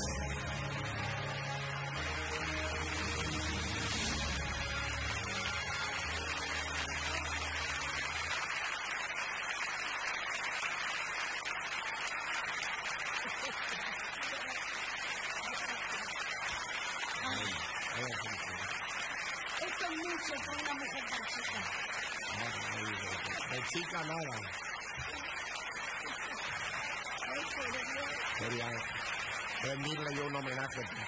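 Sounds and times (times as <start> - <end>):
music playing: 0.0 - 8.7
audience applauding: 0.0 - 31.0.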